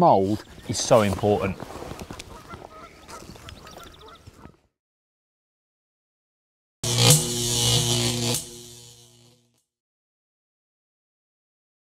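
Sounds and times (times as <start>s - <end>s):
electric crackle and hiss: 6.8s - 9.4s
low humming chord: 6.8s - 9.4s
sharp synth hit: 6.8s - 9.4s.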